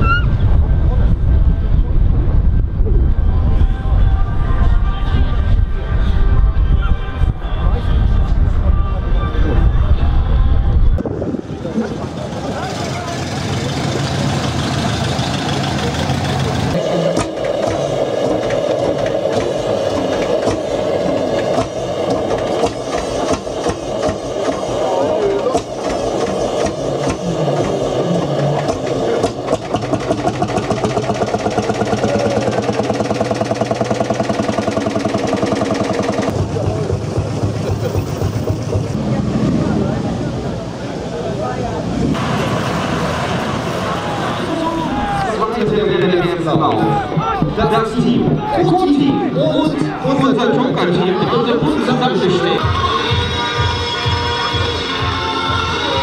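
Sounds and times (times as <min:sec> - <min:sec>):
tractor engine running: 0:11.0 - 0:40.4.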